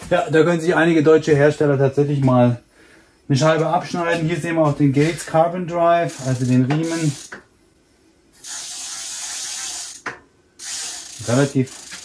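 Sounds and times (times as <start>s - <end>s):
bicycle freewheel ratcheting: 6.1s - 7.4s, 8.4s - 12.0s.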